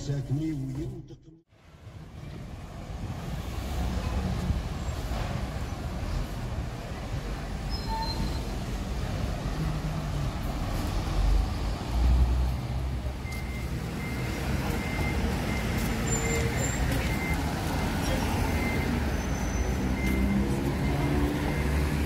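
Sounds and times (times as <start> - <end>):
road traffic: 0.0 - 22.0
faint high beep: 13.2 - 21.9.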